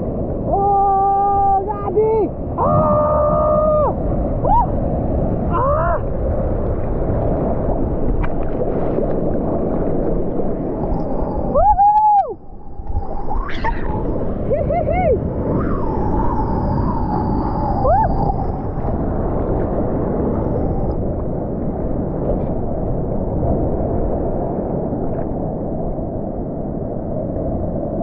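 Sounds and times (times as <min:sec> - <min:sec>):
seawater rushing and splashing: 0:00.0 - 0:27.4.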